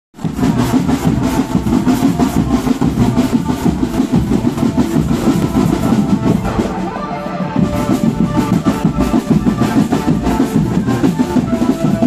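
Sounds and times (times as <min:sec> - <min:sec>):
marching drum band playing: 0:00.2 - 0:12.0.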